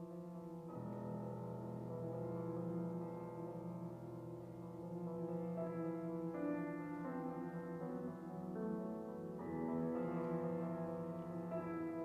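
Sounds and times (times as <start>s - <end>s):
piano sustained chord: 0.0s - 12.0s.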